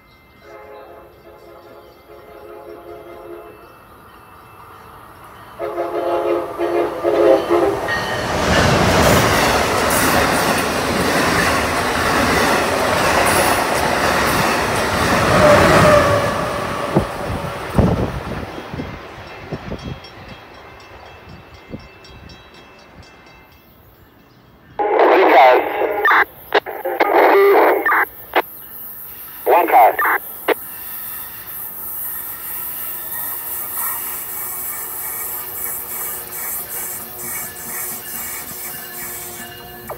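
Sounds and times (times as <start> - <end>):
train horn blasts: 0.4 - 3.6, 5.6 - 8.0
train rushing past: 1.0 - 23.6, 30.1 - 39.9.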